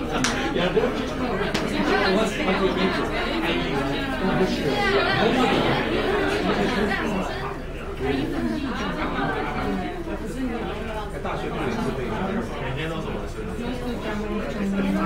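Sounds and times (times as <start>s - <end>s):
crowd chatter: 0.0s - 15.0s.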